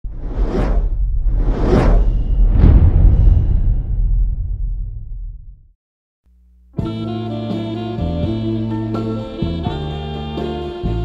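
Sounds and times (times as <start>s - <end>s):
whoosh sound effects: 0.1s - 5.6s.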